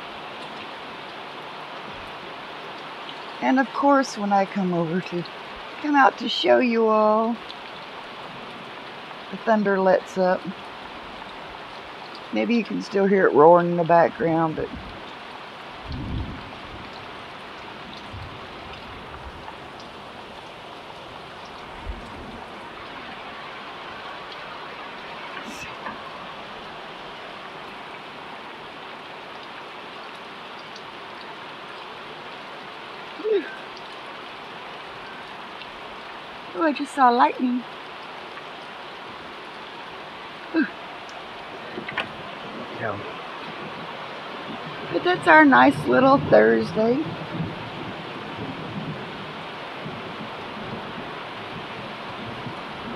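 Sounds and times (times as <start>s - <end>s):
heavy rain falling: 0.0s - 52.9s.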